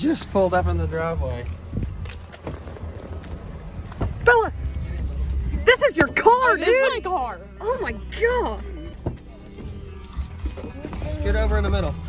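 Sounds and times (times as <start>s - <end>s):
wind buffeting microphone: 1.4s - 5.7s.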